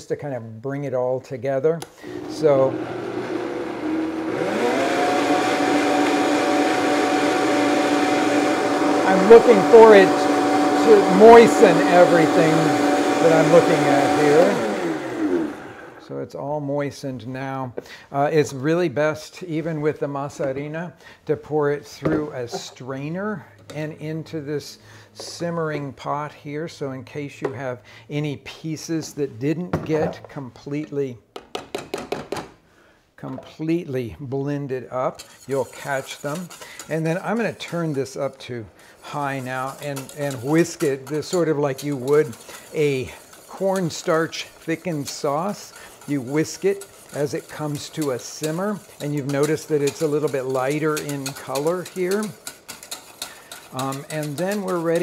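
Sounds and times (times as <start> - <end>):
blender motor running: 2.0 - 16.1
strainer tapping saucepan rim: 39.2 - 55.0.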